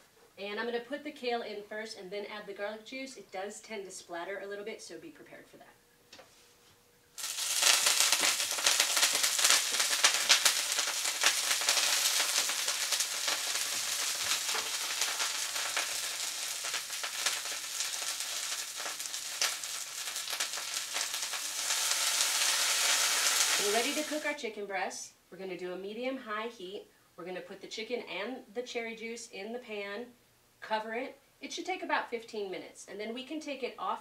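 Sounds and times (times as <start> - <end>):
greens sizzling in hot oil: 7.2 - 24.4.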